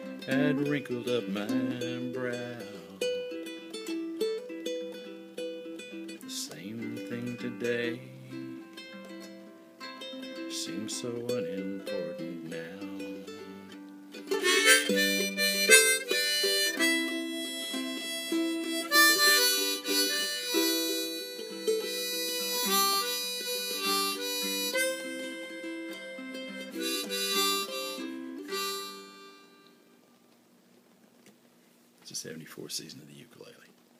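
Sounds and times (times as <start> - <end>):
harmonica: 0.0 - 30.0
strummed ukulele chords: 0.0 - 30.0.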